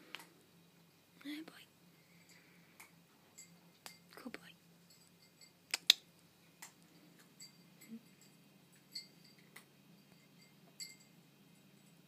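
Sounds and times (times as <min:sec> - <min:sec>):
small sharp clicks: 0:05.7 - 0:06.8.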